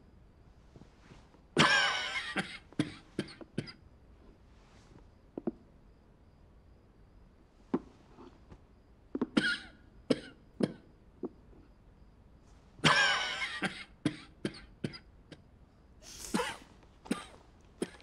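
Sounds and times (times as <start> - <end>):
man coughing: 1.6 - 3.8, 16.1 - 18.0.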